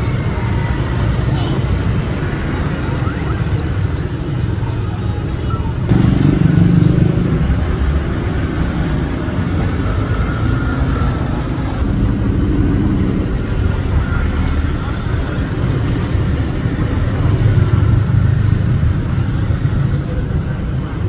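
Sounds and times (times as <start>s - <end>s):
motorcycles passing: 0.0s - 21.0s.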